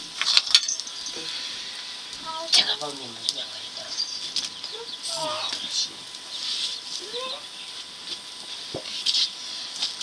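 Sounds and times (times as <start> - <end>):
wok sizzling: 0.0 - 10.0.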